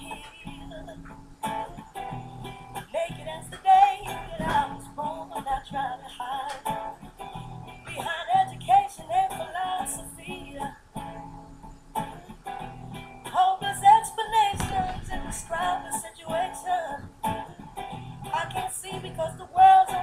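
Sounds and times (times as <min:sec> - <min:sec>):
person singing: 0:00.0 - 0:01.6, 0:02.8 - 0:11.1, 0:13.3 - 0:20.0
acoustic guitar: 0:00.0 - 0:20.0.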